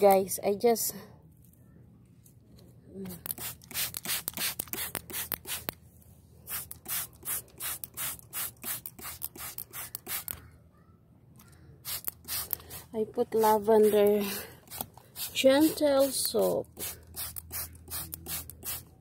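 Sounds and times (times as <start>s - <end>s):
spray bottle hissing sprays: 3.2s - 5.8s, 6.5s - 10.4s, 11.8s - 18.9s.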